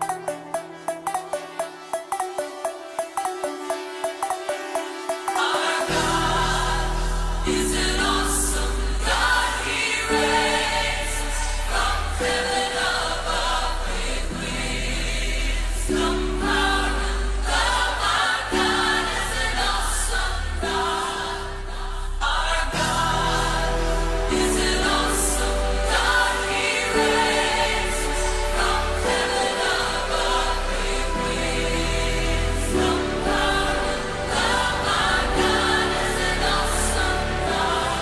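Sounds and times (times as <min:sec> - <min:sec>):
gospel choir singing: 0:00.0 - 0:38.0.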